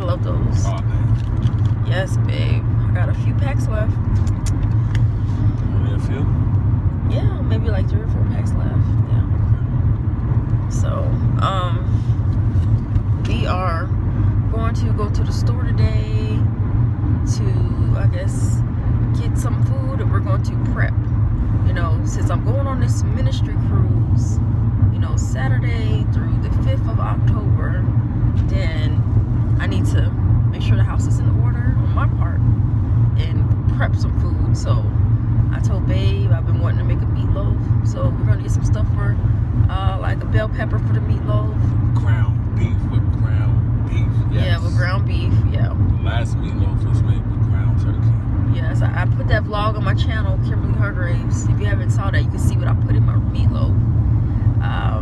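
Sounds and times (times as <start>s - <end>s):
car cabin road and engine rumble: 0.0s - 55.0s
faint talking: 46.0s - 48.0s.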